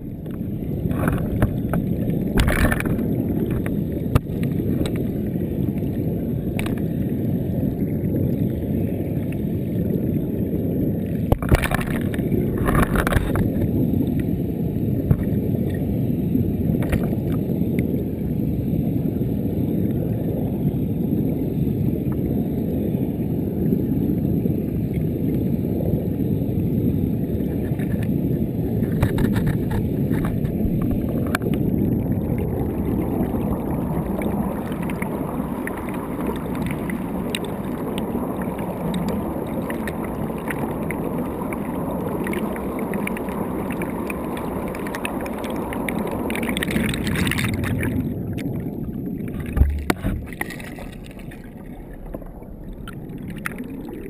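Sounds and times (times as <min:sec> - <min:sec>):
underwater rushing water: 0:00.0 - 0:54.0.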